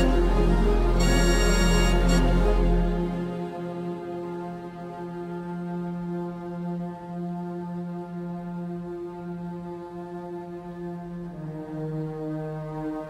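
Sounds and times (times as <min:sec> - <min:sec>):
slow ambient drone music: 0:00.0 - 0:13.0.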